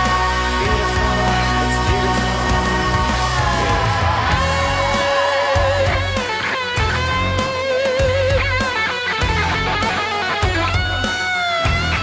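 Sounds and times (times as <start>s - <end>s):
bass: 0.0s - 12.0s
drums: 0.0s - 12.0s
electric guitar solo: 3.4s - 12.0s.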